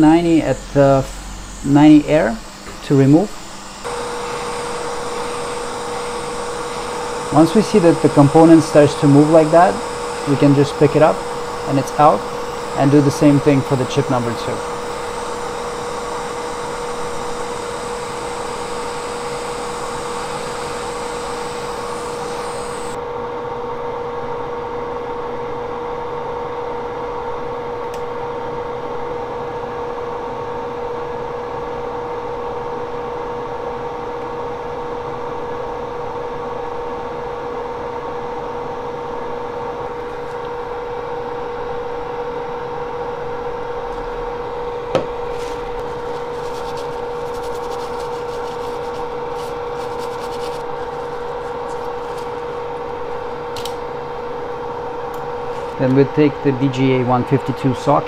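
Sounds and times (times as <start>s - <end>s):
hot-air station hissing: 0.0s - 23.0s, 45.2s - 52.6s
machine hum: 0.0s - 23.0s, 39.7s - 57.6s.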